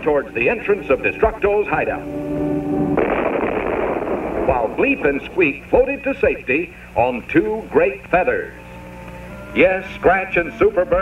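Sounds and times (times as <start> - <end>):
steady buzzing tone: 0.0 - 11.0
loud cartoon crash: 2.9 - 5.3.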